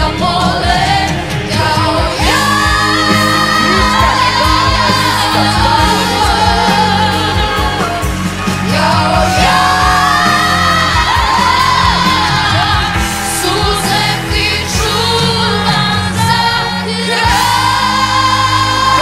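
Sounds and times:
backing track: 0.0 - 19.0
girl singing a pop ballad: 0.0 - 19.0.

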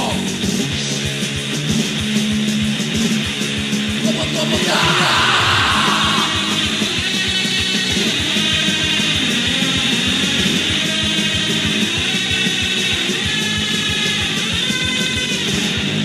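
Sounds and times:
distorted electric guitars: 0.0 - 16.0
rapid drum beat: 0.0 - 16.0.

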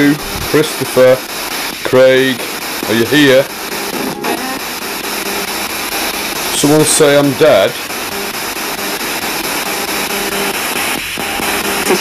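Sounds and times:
faint broken radio fragments: 0.0 - 12.0
radio static hiss: 0.0 - 12.0.

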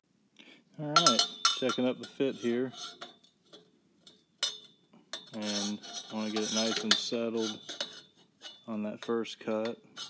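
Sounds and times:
metal tube clinking against tubing: 1.0 - 10.0.

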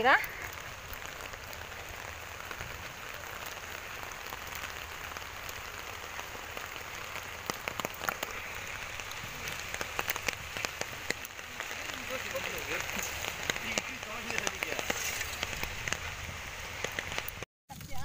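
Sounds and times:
sharp ticks of raindrops: 0.0 - 18.0
steady rain falling: 0.0 - 18.0.

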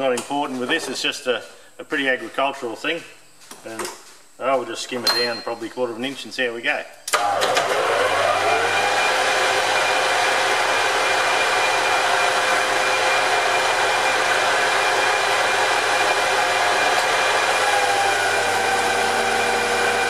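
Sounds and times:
metal lathe whining: 7.2 - 20.0.

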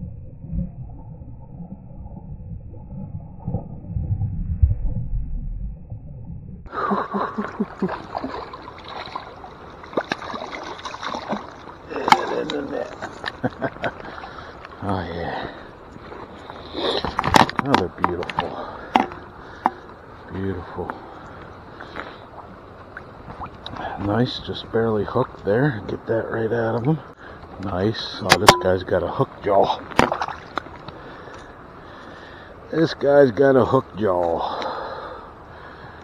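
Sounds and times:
river water rushing: 6.7 - 13.3
river flowing: 6.7 - 17.2, 18.0 - 24.2
fish splashing in a landing net: 7.8 - 12.5.

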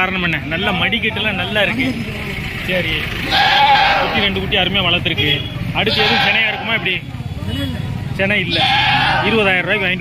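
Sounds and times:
crowd chatter: 0.0 - 10.0
goats bleating: 3.3 - 4.2, 5.9 - 6.8, 8.5 - 9.4.

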